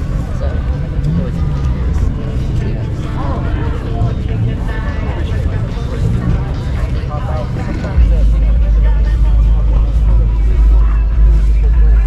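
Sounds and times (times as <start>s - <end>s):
low rumble: 0.0s - 12.0s
people talking: 0.0s - 12.0s.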